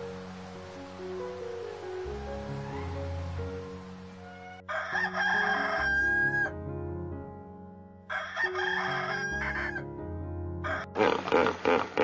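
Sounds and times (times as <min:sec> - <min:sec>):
soft background music: 0:00.0 - 0:11.6
rooster crowing: 0:04.2 - 0:06.5, 0:08.1 - 0:09.8, 0:10.6 - 0:11.0.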